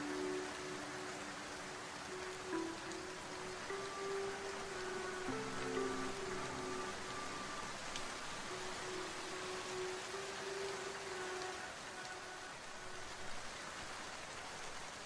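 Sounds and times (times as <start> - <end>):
soft held music notes: 0.0 - 13.6
steady rain falling: 0.0 - 15.0.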